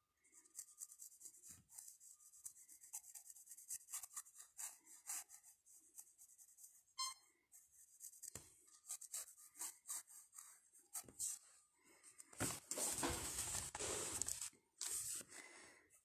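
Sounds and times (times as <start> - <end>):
pencil scratching on paper: 0.4 - 11.4.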